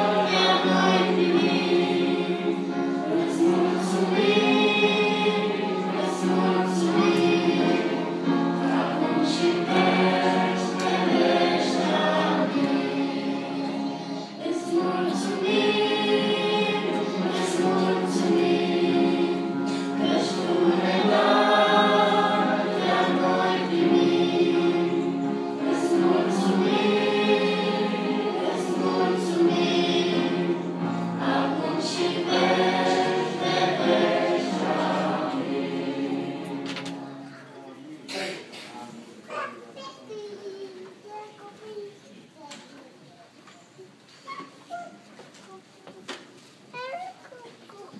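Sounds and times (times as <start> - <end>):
church choir singing a hymn: 0.0 - 38.2.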